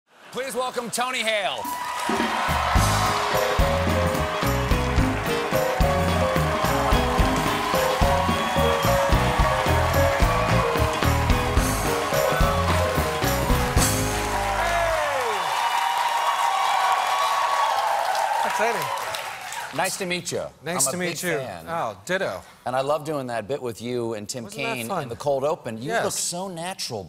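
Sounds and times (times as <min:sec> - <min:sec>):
studio audience applause: 0:00.3 - 0:20.2
live band playing upbeat music: 0:02.1 - 0:15.2.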